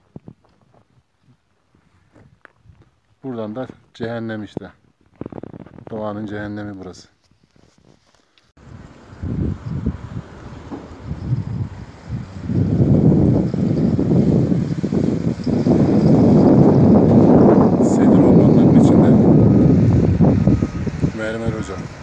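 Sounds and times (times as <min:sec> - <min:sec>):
wind buffeting microphone: 0:03.7 - 0:06.0, 0:08.6 - 0:22.0.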